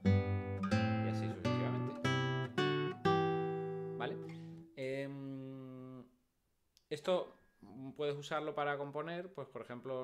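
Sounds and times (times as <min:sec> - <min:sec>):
classical guitar plucking chords: 0:00.0 - 0:04.7.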